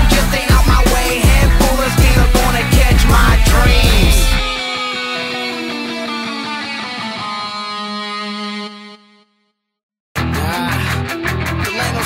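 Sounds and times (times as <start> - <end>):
guitar chords ringing: 0.0 - 9.3.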